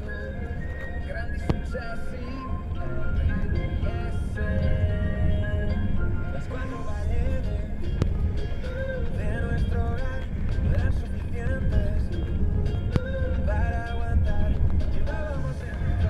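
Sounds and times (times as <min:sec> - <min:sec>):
song on radio: 0:00.0 - 0:16.0
steady low hum: 0:00.0 - 0:16.0.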